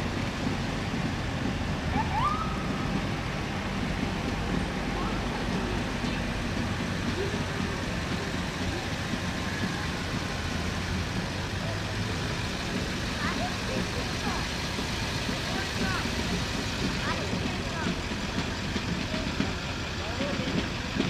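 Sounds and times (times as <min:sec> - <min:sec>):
ambulance engine droning: 0:00.0 - 0:21.0
people talking in background: 0:00.0 - 0:21.0.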